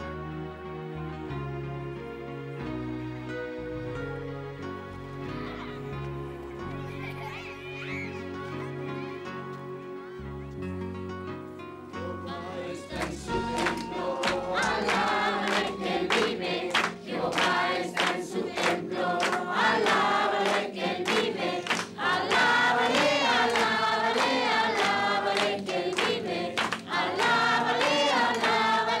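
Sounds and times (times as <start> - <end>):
congregation singing: 12.0 - 29.0
hand claps: 13.0 - 28.8.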